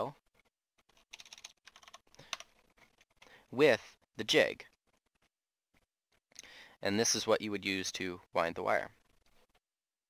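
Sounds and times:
keyboard keys clicking: 1.0s - 2.5s.

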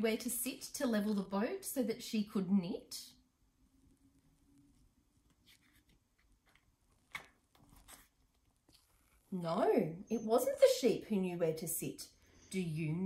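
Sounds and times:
paper page turning: 4.7s - 9.2s.

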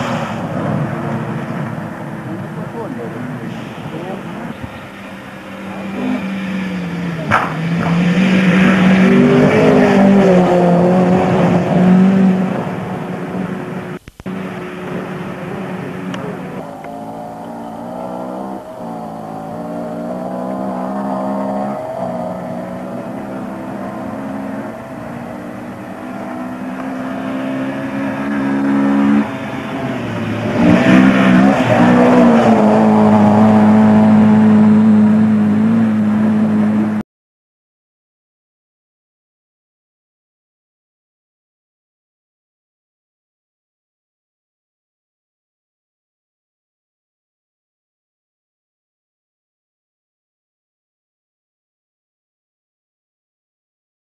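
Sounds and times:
racing engine at high revs: 0.0s - 37.0s.

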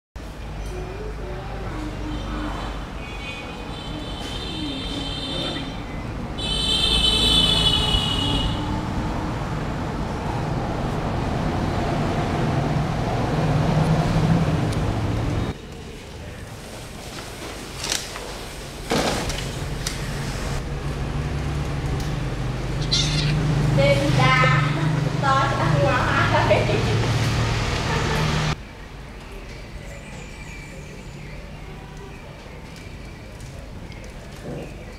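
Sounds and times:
kitten mewing: 22.8s - 23.5s.

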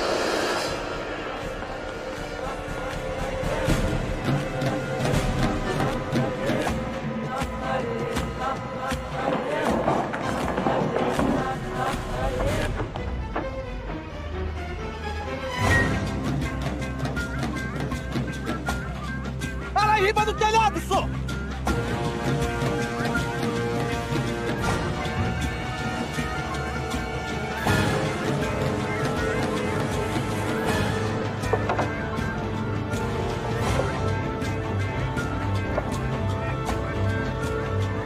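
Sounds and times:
soundtrack music with beat: 0.0s - 38.0s.

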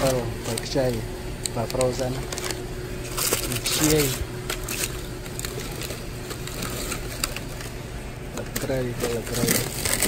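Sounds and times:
plastic packaging crinkling: 0.0s - 10.0s
steady low hum: 0.0s - 10.0s.

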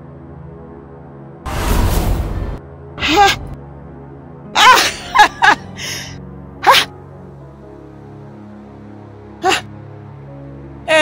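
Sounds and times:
low background music: 0.0s - 11.0s
woman crying out: 3.0s - 3.5s, 4.6s - 6.9s, 9.4s - 9.6s
woman laughing exclamation: 4.6s - 5.6s.

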